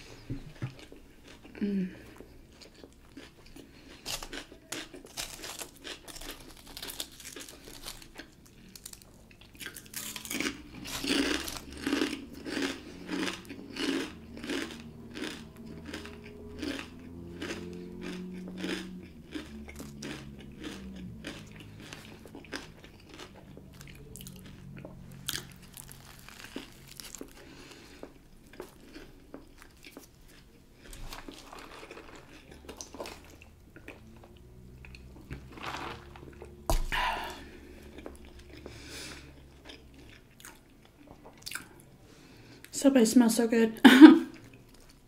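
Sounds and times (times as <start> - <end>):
chewing and crunching chips: 0.0 - 42.8, 44.2 - 45.0.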